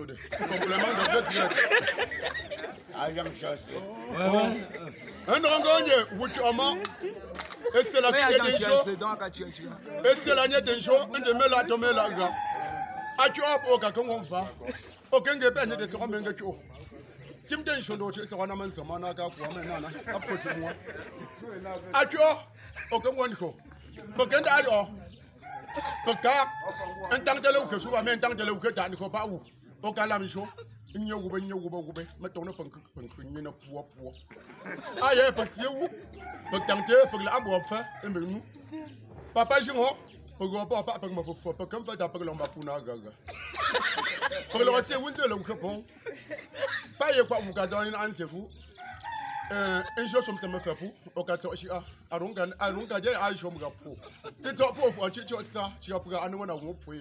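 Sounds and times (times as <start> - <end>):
man talking: 0.0 - 25.2, 25.9 - 38.6, 39.2 - 48.6, 49.5 - 57.0
man's voice: 0.0 - 25.2, 25.8 - 48.6, 49.6 - 57.0
rooster crowing: 12.0 - 13.8, 25.4 - 27.3, 36.2 - 38.1, 48.8 - 50.7.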